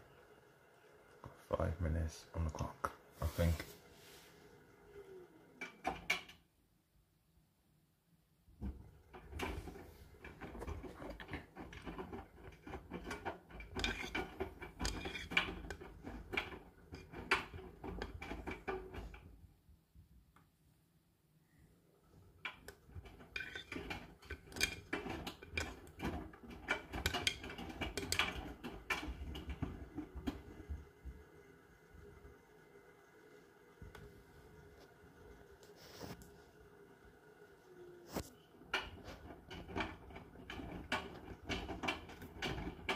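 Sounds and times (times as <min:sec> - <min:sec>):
washing machine motor hum: 0:00.0 - 0:06.4, 0:08.4 - 0:20.2, 0:21.8 - 0:42.9
laundry clattering in drum: 0:08.6 - 0:19.4, 0:22.4 - 0:31.2, 0:38.6 - 0:42.9.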